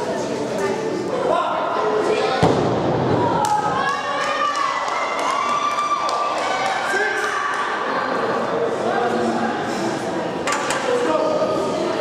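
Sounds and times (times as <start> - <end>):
crowd voices and shouts: 0.0 - 12.0.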